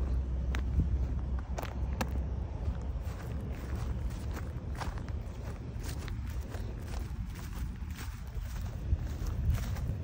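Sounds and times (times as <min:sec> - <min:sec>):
footsteps on dry grass: 0:00.0 - 0:10.0
low microphone rumble: 0:00.0 - 0:10.0.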